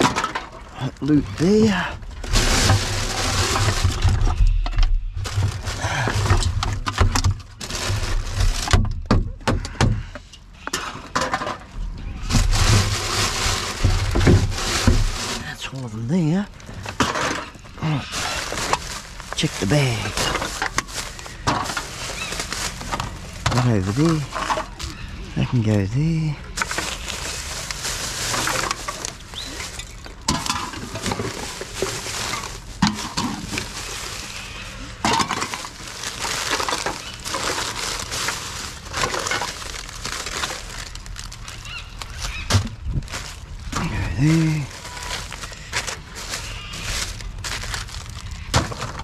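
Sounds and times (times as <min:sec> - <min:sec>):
plastic bags and cardboard rustling: 0:00.0 - 0:49.0.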